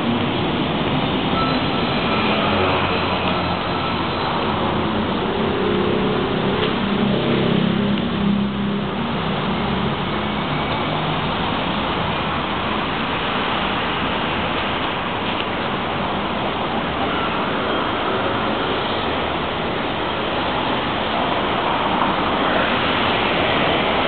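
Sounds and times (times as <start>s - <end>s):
street traffic noise: 0.0s - 24.0s
vehicle engine low drone: 0.0s - 24.0s.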